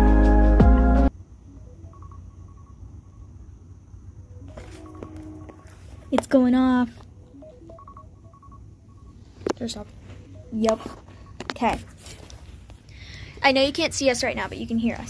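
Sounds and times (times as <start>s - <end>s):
phone timer alarm beeps: 1.5s - 3.4s, 4.2s - 11.8s.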